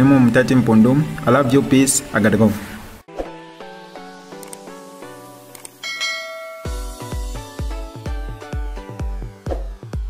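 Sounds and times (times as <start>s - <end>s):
electronic music: 3.4s - 10.0s
bright bell ding: 5.8s - 7.3s.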